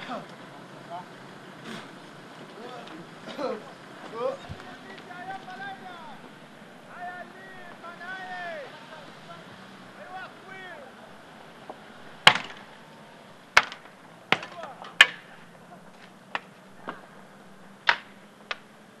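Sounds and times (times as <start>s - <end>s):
person shouting: 4.2s - 6.2s, 6.9s - 9.4s, 10.0s - 11.0s
sharp bangs with echo: 12.2s - 12.8s.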